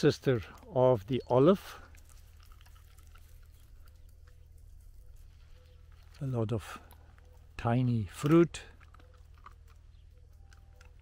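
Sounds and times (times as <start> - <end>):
small ticks: 1.8 - 6.2.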